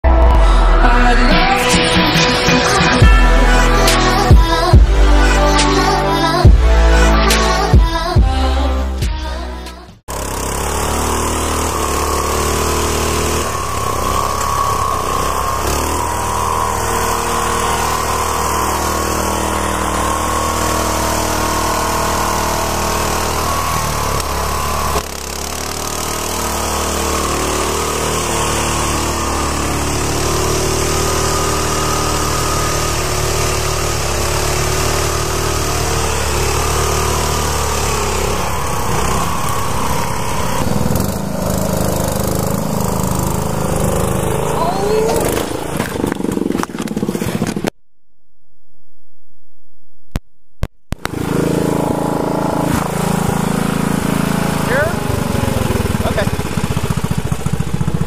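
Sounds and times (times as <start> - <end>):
garden tractor engines running: 9.6 - 47.7, 51.0 - 58.0.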